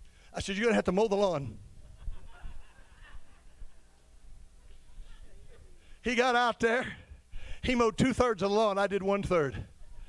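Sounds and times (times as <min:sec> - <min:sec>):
congregation laughing: 0:01.8 - 0:05.2.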